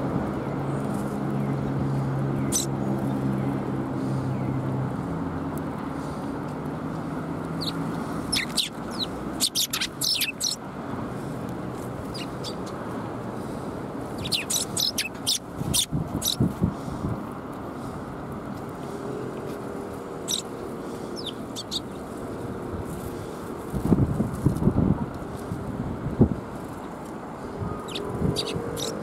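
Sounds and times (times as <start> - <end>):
sparrows chirping: 0.5 - 4.6, 7.5 - 12.8, 13.4 - 17.0, 20.0 - 22.5, 26.7 - 29.0.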